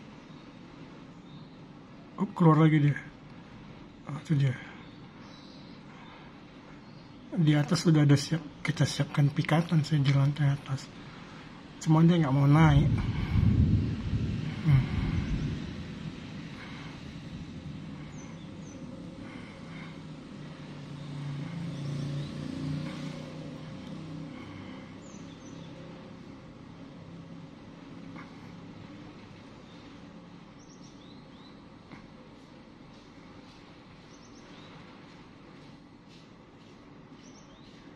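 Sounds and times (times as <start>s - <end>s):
traffic hum: 0.0s - 37.9s
small bird chirping: 37.2s - 37.9s.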